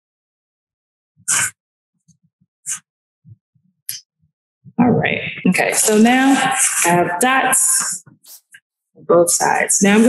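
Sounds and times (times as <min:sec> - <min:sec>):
person sharp breath: 0:01.3 - 0:01.6.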